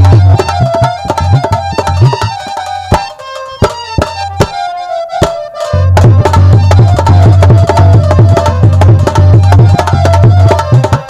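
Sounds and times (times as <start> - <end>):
fast hand-drum strokes: 0.0 - 11.0
held melody line: 0.0 - 11.0
deep booming drum: 5.9 - 10.5.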